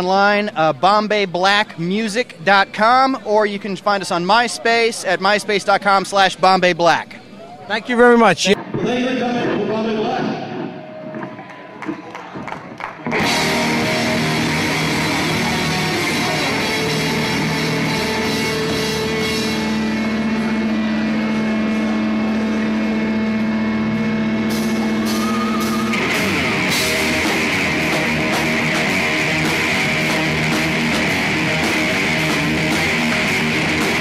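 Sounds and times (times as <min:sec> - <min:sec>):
drums: 0:10.6 - 0:34.0
bass guitar: 0:13.1 - 0:34.0
distorted electric guitar: 0:13.1 - 0:34.0.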